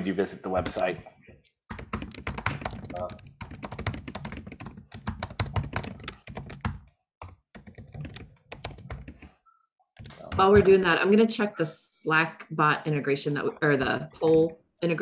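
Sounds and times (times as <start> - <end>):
computer keyboard typing: 1.7 - 9.4.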